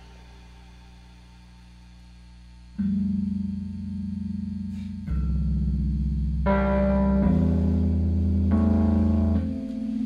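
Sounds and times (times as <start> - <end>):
electric guitar notes: 0.0 - 10.0
deep bass note: 2.7 - 9.6
electronic keyboard chords: 2.8 - 10.0.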